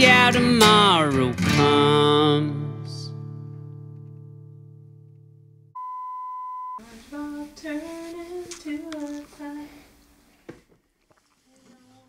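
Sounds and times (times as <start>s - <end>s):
electronic beep tone: 5.8s - 6.8s.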